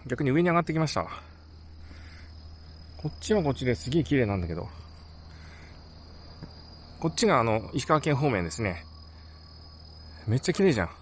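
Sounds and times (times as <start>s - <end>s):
crickets trilling: 0.0s - 11.0s
low hum: 1.2s - 11.0s.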